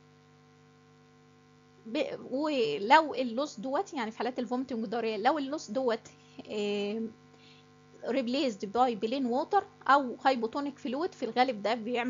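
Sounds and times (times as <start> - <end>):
faint electrical hum: 0.0 - 12.0
woman speaking: 1.9 - 7.1, 8.0 - 12.0.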